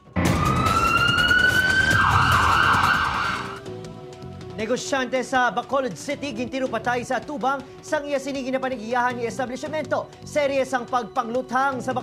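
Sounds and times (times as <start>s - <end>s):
rising siren-like warbling tone: 0.0s - 3.6s.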